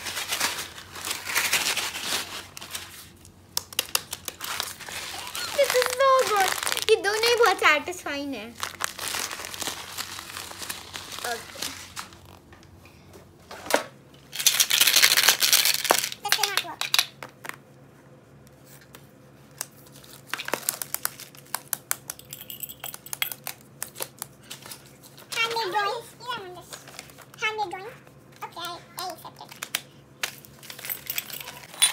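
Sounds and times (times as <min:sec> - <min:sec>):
plastic bag crinkling: 0:00.0 - 0:12.5, 0:14.3 - 0:16.2, 0:19.7 - 0:23.5
small objects tapping and clicking: 0:14.4 - 0:17.6, 0:20.3 - 0:24.3.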